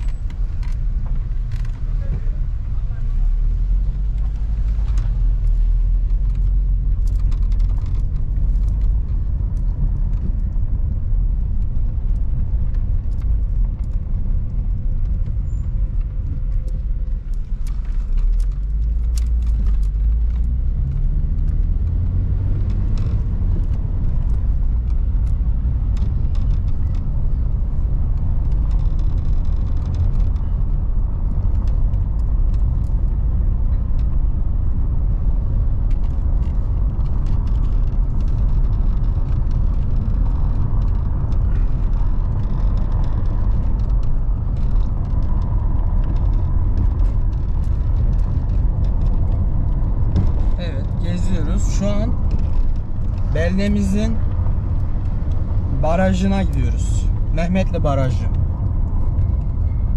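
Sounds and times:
small clicks and rattles: 0:00.0 - 0:02.2, 0:03.8 - 0:59.9
tyres rumbling on rough road: 0:00.0 - 0:59.9.

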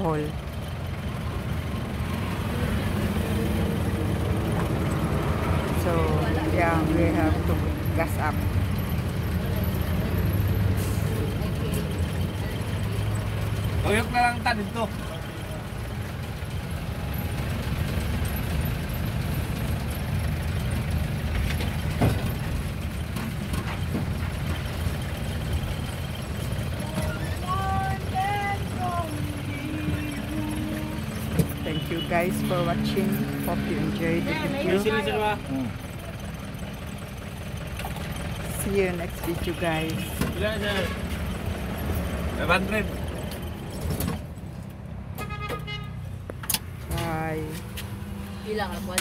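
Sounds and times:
car engine idling: 0:00.0 - 0:45.1
car engine running at low speed: 0:11.2 - 0:31.8.

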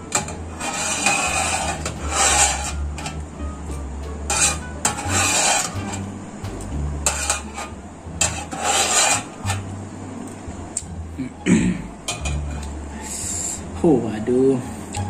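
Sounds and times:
fork scraping metal tray: 0:00.0 - 0:03.3, 0:04.3 - 0:06.1, 0:07.0 - 0:09.7, 0:12.1 - 0:12.7
low hum: 0:00.0 - 0:15.0.

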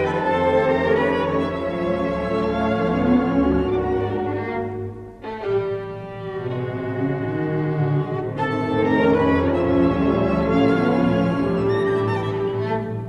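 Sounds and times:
violin and orchestra playing: 0:00.0 - 0:13.0.

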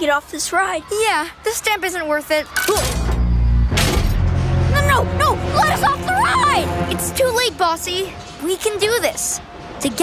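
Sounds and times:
background music: 0:02.8 - 0:10.0.

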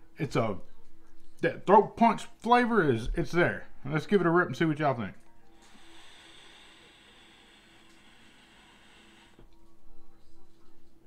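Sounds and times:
hiss of air through vape coil: 0:05.6 - 0:09.4.

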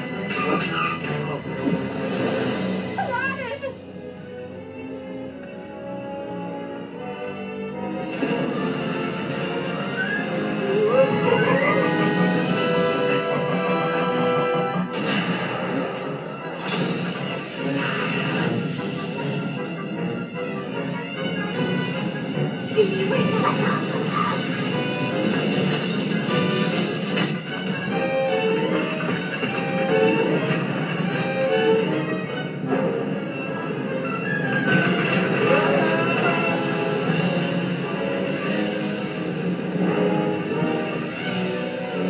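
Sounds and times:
orchestral film music: 0:00.0 - 0:42.0
crash effects: 0:08.0 - 0:10.2, 0:14.8 - 0:19.4, 0:24.3 - 0:27.9, 0:34.6 - 0:39.8
characters crying out and laughing: 0:23.0 - 0:24.5.

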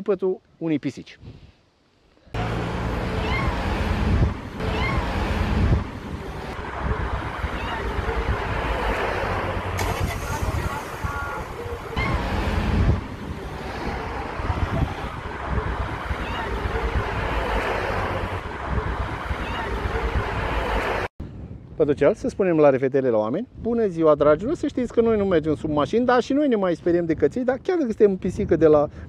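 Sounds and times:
wind noise on microphone: 0:01.2 - 0:01.6, 0:03.2 - 0:29.0
street noise: 0:01.6 - 0:21.8.

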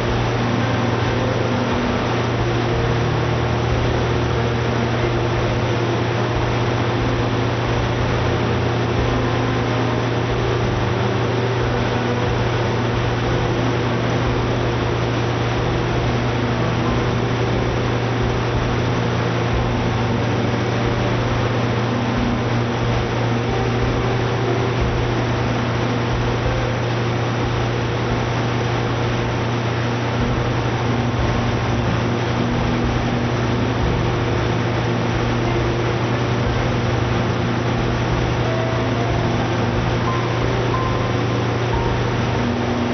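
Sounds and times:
engine generator humming: 0:00.0 - 0:42.9.

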